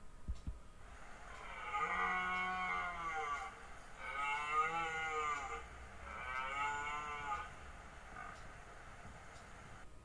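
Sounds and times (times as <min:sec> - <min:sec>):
animal lowing: 0:00.9 - 0:09.8.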